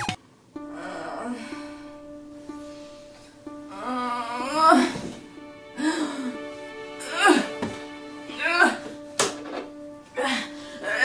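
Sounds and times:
soft background music: 0:00.0 - 0:11.0
girl moaning groan: 0:00.7 - 0:01.8, 0:03.6 - 0:05.2, 0:07.0 - 0:07.7, 0:08.3 - 0:09.0, 0:10.1 - 0:11.0.

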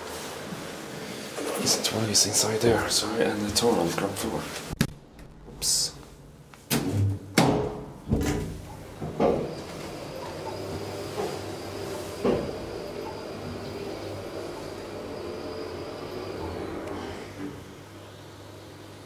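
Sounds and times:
elevator low hum: 0:01.7 - 0:19.0
elevator machinery clunks and knocks: 0:06.7 - 0:11.4.

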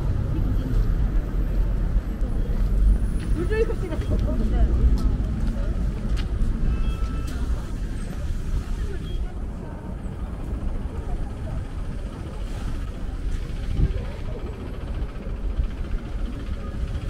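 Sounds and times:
passers-by talking: 0:00.0 - 0:17.0
traffic rumble: 0:00.0 - 0:17.0.

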